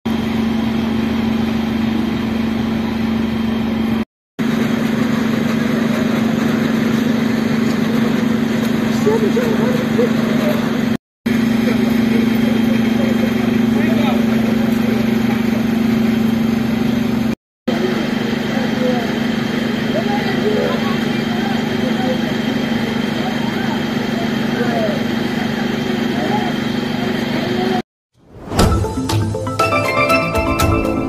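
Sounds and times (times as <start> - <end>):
emergency vehicle engines idling: 0.9 - 27.8
people talking and calling out: 8.9 - 10.9, 17.8 - 27.8.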